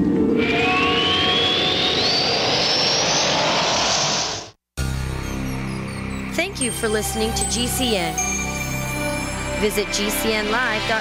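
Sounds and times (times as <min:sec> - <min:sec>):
jet-like roar with rising whistle: 0:00.0 - 0:04.6.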